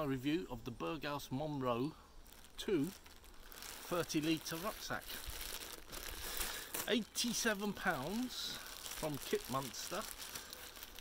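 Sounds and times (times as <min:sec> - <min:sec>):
plastic bag crinkling: 0:02.2 - 0:11.0.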